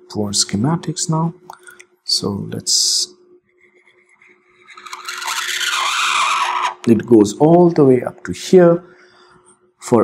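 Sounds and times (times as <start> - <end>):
stylus scratching on drawing tablet: 3.4 - 7.2.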